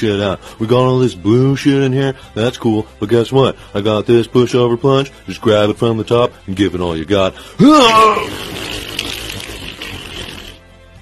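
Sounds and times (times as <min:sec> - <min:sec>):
toilet water rushing and draining: 0:08.3 - 0:10.6.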